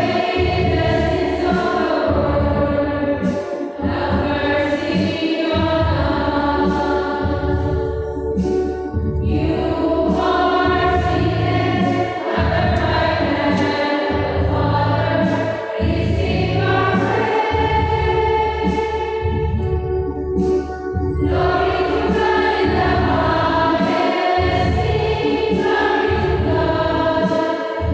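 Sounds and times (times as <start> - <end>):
choir singing a hymn: 0.0 - 19.7, 21.2 - 27.9.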